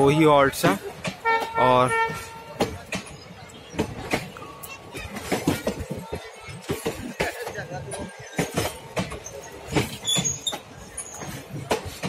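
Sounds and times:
train rumble: 0.0 - 12.0
train wheels clattering over joints: 0.0 - 12.0.

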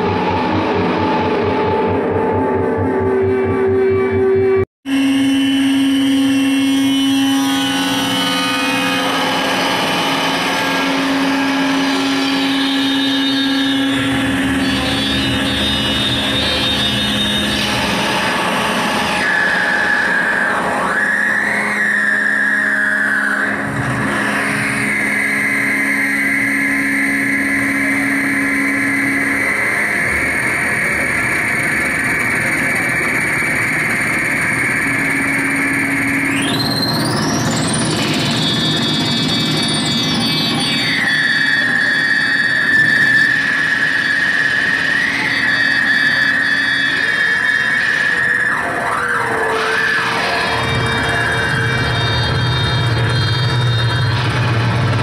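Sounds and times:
dense electronic noise: 0.0 - 55.0
high whistling tone: 0.0 - 55.0
low synth drone: 0.0 - 55.0
synth pitch sweep: 0.0 - 55.0.

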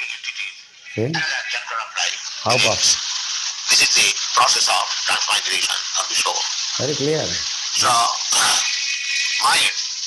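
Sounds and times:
man's voice from phone speaker: 0.0 - 9.9
steady hiss: 0.0 - 10.0.

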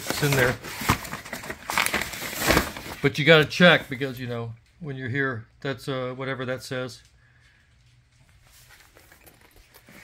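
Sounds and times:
paper rustling and crinkling: 0.0 - 4.1.

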